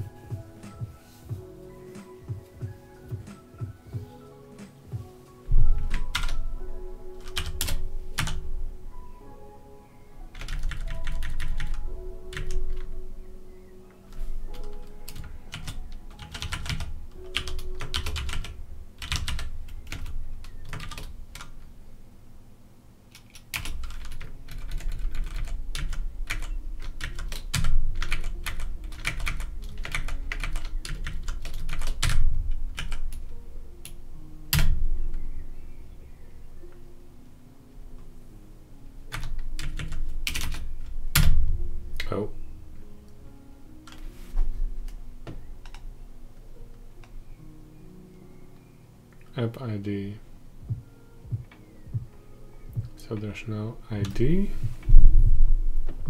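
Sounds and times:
quiet background music: 0.0 - 56.0
typing on computer keyboard: 5.8 - 6.4, 7.2 - 8.4, 10.3 - 12.9, 14.5 - 21.6, 23.1 - 33.2, 39.1 - 41.3.

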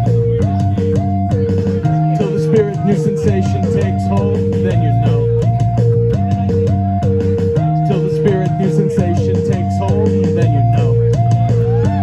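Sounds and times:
drums: 0.0 - 12.0
electric bass guitar: 0.0 - 12.0
repeating two-note riff: 0.0 - 12.0.

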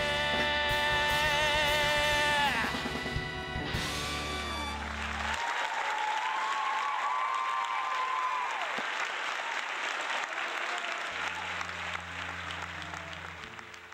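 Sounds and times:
audience applauding: 3.7 - 13.9.

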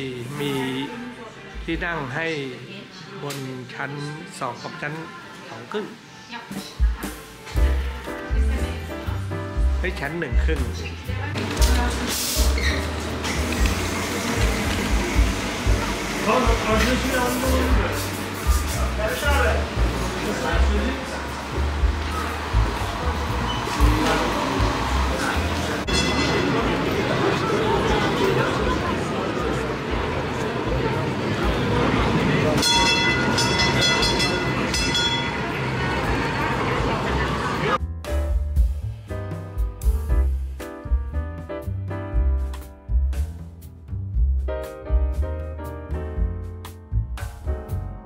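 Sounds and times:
background music with bass: 6.8 - 26.1, 37.8 - 48.0
crowd chatter: 10.6 - 37.8
tram warning bell clanging: 25.6 - 27.6, 32.6 - 36.8.

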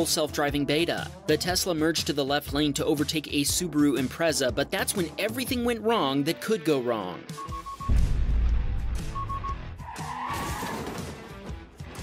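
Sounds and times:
background music: 0.0 - 12.0
quick high beeps: 7.3 - 8.0, 9.0 - 9.7
car tires squealing: 9.8 - 11.3.

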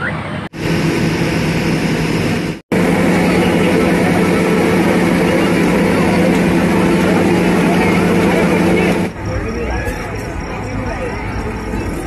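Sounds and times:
electric fan whirring: 0.5 - 9.7
crowd voices: 2.3 - 12.0.

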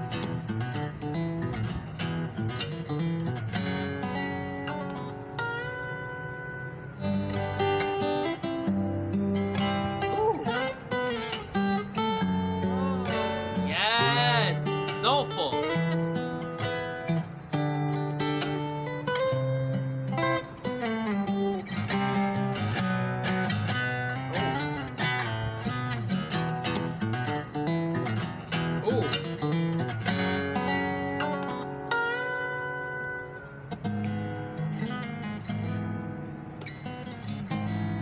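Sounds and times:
fingerstyle acoustic guitar: 0.0 - 38.0.

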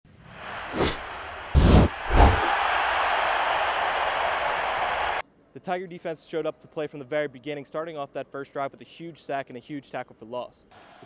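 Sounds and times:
steady rushing noise: 0.7 - 2.6.

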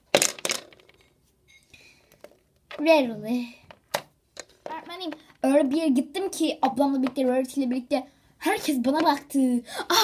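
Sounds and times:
plastic toy clattering on floor: 0.1 - 1.2.

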